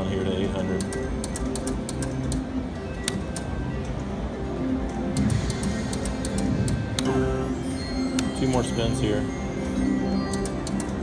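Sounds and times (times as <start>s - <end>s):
slot machine game music: 0.0s - 11.0s.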